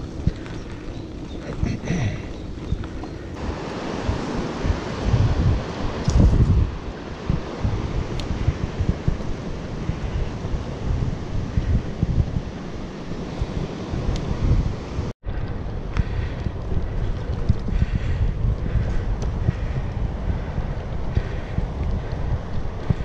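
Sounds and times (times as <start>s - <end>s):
small clicks from bicycle: 0.0s - 1.5s, 2.3s - 3.4s, 15.3s - 23.0s
wind buffeting microphone: 0.0s - 23.0s.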